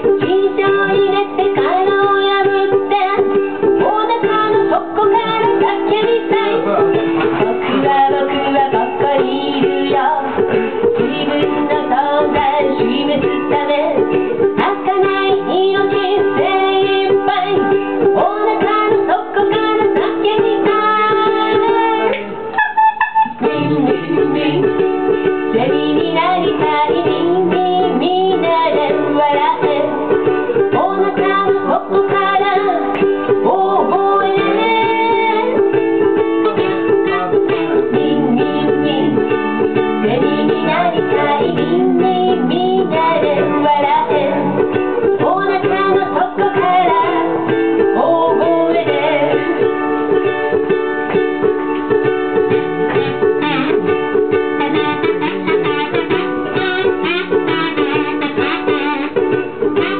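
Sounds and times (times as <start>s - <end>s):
woman singing: 0.0s - 22.6s, 23.3s - 50.5s, 52.9s - 59.2s
strummed ukulele: 0.0s - 59.9s.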